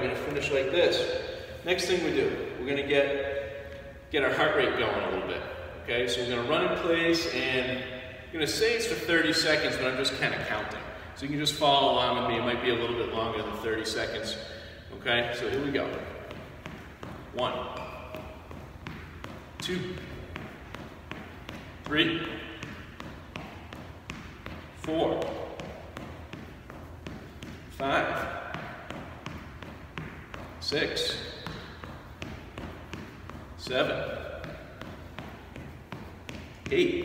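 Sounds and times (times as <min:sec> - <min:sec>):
man counting: 0:08.4 - 0:16.6, 0:17.2 - 0:18.5, 0:19.4 - 0:23.4, 0:24.8 - 0:26.0, 0:27.0 - 0:29.2, 0:30.5 - 0:32.3, 0:33.5 - 0:35.6, 0:36.2 - 0:37.0
jogging footsteps on hardwood floor: 0:15.4 - 0:37.0.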